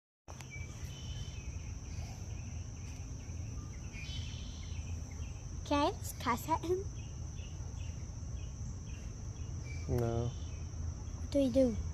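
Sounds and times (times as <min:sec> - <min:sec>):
insects trilling: 0:00.3 - 0:11.9.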